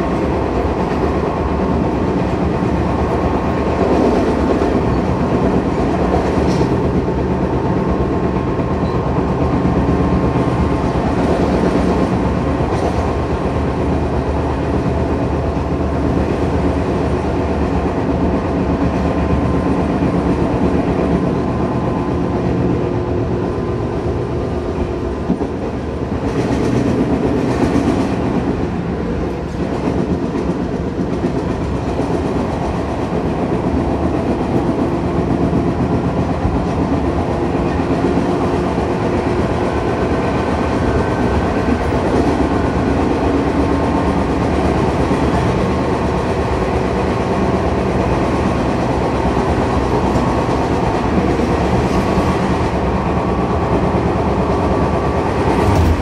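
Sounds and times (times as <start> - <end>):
train wheels rumbling on rails: 0.0 - 56.0.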